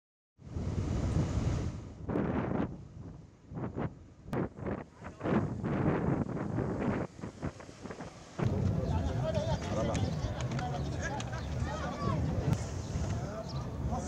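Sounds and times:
wind buffeting microphone: 0.4s - 14.0s.

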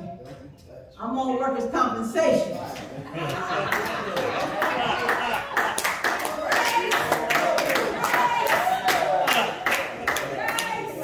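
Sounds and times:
people laughing: 2.8s - 11.0s
hand clapping: 3.3s - 11.0s.

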